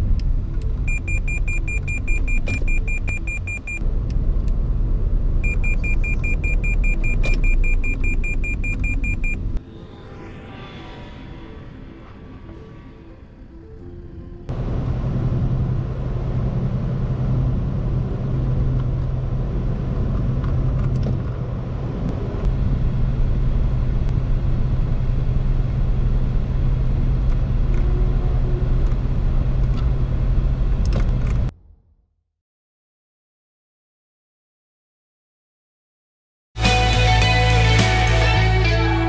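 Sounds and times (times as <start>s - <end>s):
car driving at speed: 0.0s - 31.5s.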